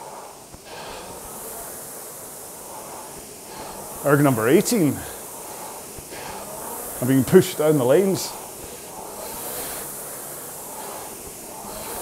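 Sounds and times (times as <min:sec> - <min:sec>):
rowing machine flywheel whooshing: 0:00.0 - 0:12.0.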